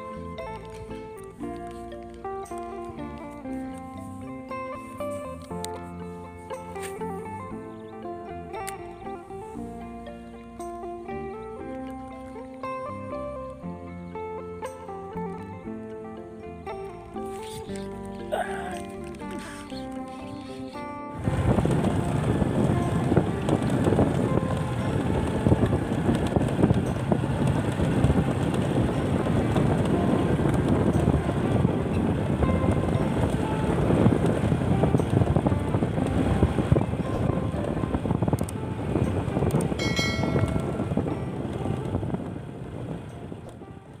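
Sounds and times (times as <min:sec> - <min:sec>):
motorcycle engine rumble: 0:00.0 - 0:44.0
music: 0:00.0 - 0:44.0
wind buffeting microphone: 0:16.6 - 0:44.0.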